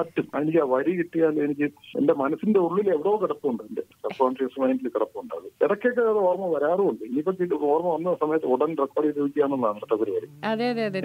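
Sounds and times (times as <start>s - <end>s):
voice over telephone line: 3.1s - 11.0s
clear voice talking: 10.1s - 11.0s.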